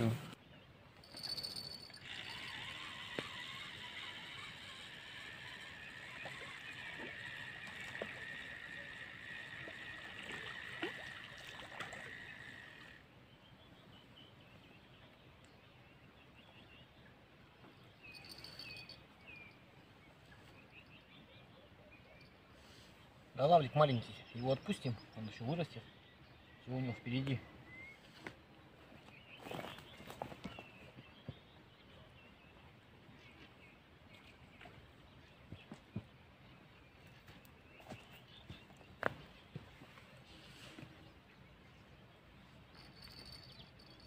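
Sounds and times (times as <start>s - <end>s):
fishing reel whirring: 1.0s - 13.1s.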